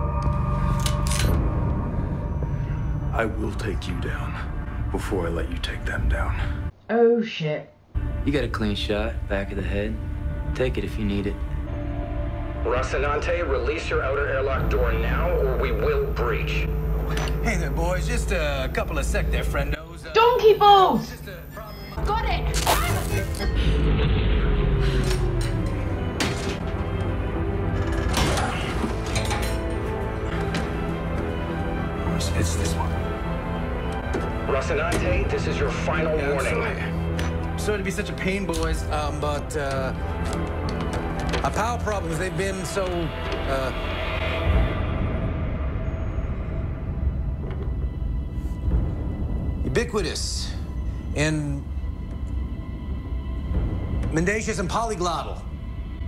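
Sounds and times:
tense dramatic underscore: 0.0s - 56.0s.

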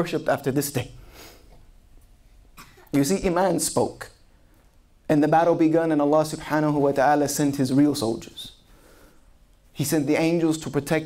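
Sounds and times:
sharp intake of breath: 1.0s - 1.5s, 8.6s - 9.4s.

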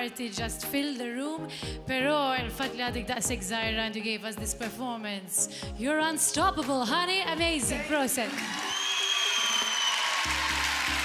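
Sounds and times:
studio audience applauding: 7.7s - 11.0s.

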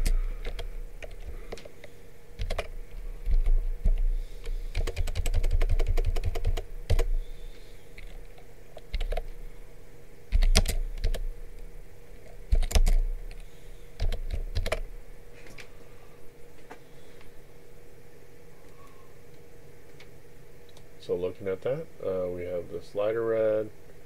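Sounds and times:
typing on computer keyboard: 0.0s - 1.6s, 2.4s - 4.0s, 4.7s - 7.1s, 8.8s - 9.3s, 10.3s - 11.2s, 12.5s - 13.4s, 14.0s - 14.8s.

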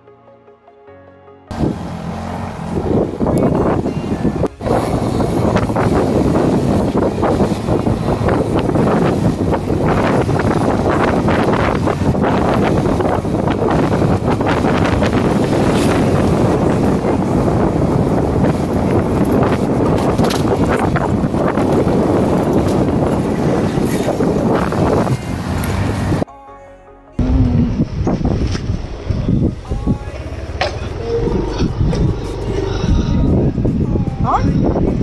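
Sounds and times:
wind on microphone: 1.5s - 26.3s, 27.2s - 35.0s
bicycle rattling on rough track: 7.0s - 24.8s.

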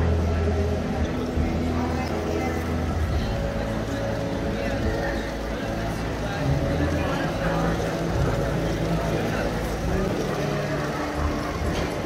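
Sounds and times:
people talking indistinctly: 0.0s - 12.0s
wheels rolling on rails: 0.0s - 12.0s.

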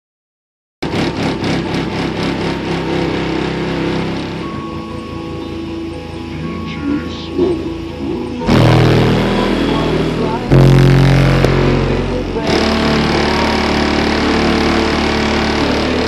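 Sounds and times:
bass-heavy music through subwoofer: 0.8s - 16.0s.

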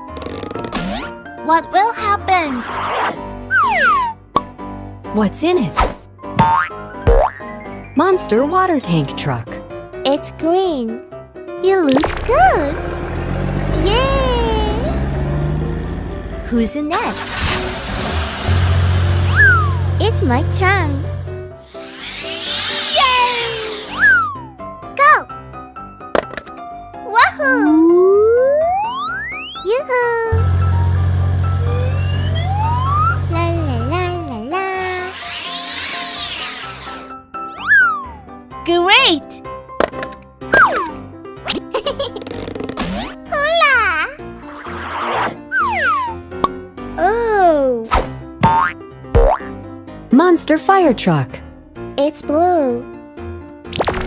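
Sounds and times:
cartoon background music: 0.0s - 54.0s
low engine-like hum: 12.2s - 21.4s, 30.3s - 34.3s
rising and falling whistle: 19.3s - 19.8s, 21.7s - 24.4s, 28.0s - 29.4s, 31.6s - 33.2s
hissing swoosh: 21.3s - 24.4s, 34.8s - 37.2s
falling whistle glide: 21.7s - 24.4s, 31.7s - 33.2s, 35.1s - 38.0s.

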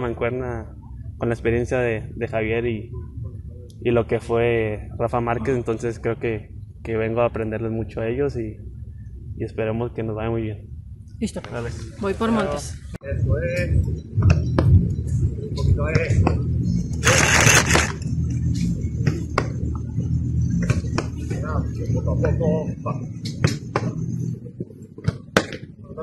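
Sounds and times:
steady low rumble: 0.0s - 26.0s.

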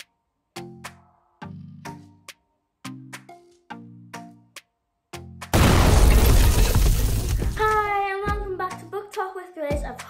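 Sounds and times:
loud crash: 5.6s - 7.7s.

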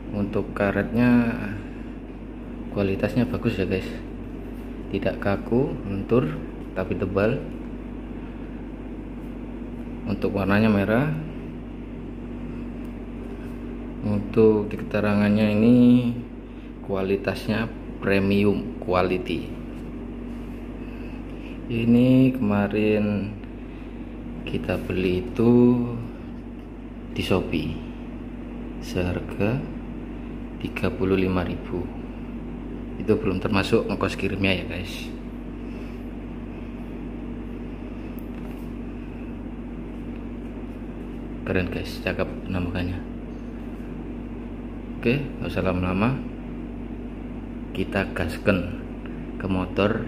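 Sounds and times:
low machinery hum: 0.0s - 50.0s
faint held tone: 43.2s - 43.9s.

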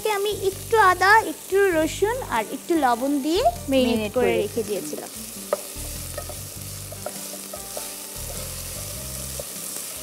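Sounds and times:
food sizzling in oil: 0.0s - 10.0s.

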